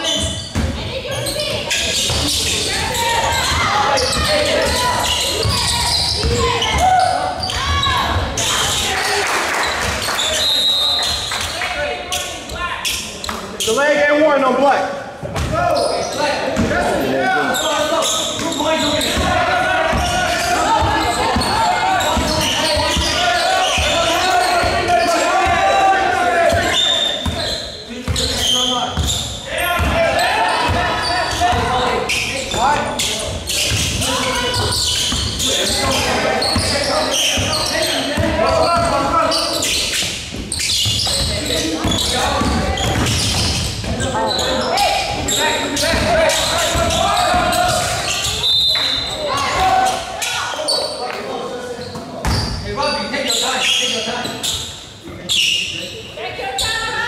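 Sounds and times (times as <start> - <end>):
people shouting and talking: 0.0 - 57.0
basketball bouncing on court: 18.4 - 25.6, 40.3 - 44.0.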